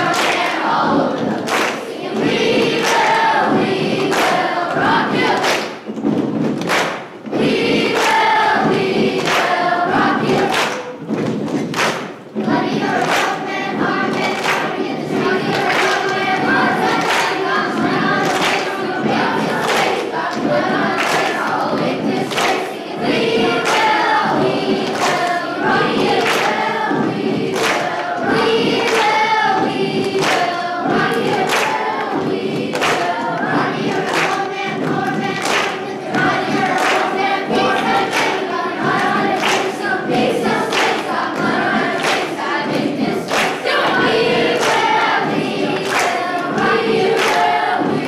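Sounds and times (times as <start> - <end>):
choir singing: 0.0 - 5.9, 7.3 - 11.2, 12.4 - 48.0
percussive hits on a beat: 0.0 - 48.0.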